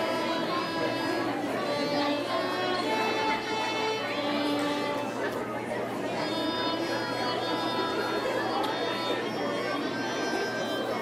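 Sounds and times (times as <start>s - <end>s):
audience chatter: 0.0s - 11.0s
violins playing slowly: 0.0s - 11.0s.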